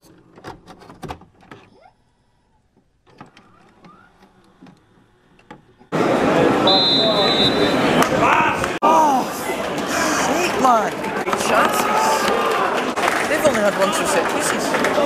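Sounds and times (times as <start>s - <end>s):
crowd voices and shouting: 3.2s - 15.0s
referee's whistle: 6.6s - 8.0s.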